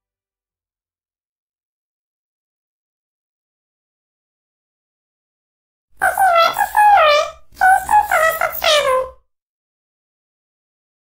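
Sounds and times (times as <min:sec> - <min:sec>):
high-pitched voice-like call: 0:06.0 - 0:09.2.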